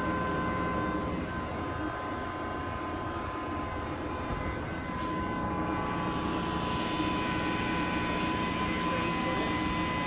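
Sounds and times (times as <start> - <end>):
thin high whine: 0.0 - 10.0.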